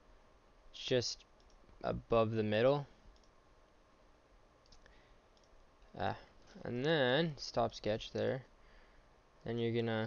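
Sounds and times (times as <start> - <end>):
computer mouse clicks: 1.4 - 1.7, 3.1 - 3.4, 4.6 - 5.9.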